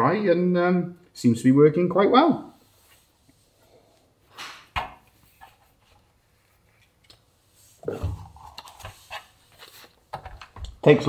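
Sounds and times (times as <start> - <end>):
knocks and rustles: 7.8 - 11.0.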